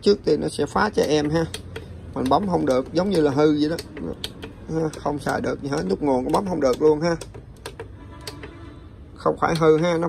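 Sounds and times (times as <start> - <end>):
plastic button clicks: 1.0 - 8.6.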